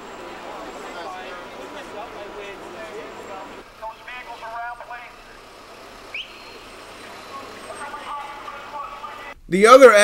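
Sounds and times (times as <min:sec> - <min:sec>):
traffic hum: 0:00.0 - 0:10.0
voices: 0:00.0 - 0:10.0
short rising chirp: 0:06.1 - 0:07.1.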